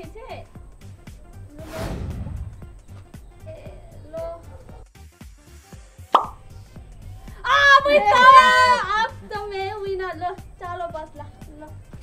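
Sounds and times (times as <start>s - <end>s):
background music with low beat: 0.0s - 12.0s
plop sound effect: 6.2s - 6.4s.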